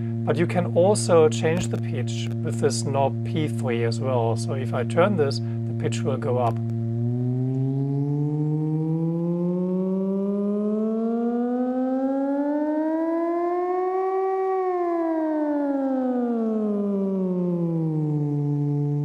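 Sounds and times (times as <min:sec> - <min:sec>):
synthesizer tone sweeping pitch: 0:05.7 - 0:19.0.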